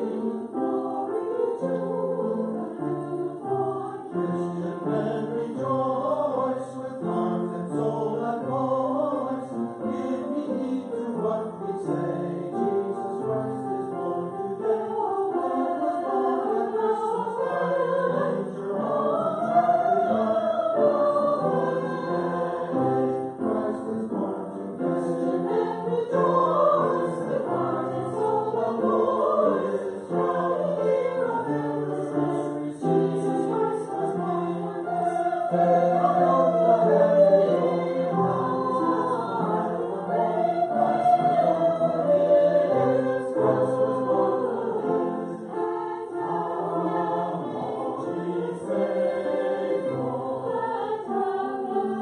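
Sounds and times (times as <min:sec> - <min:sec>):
choir singing in parts: 0:00.0 - 0:52.0.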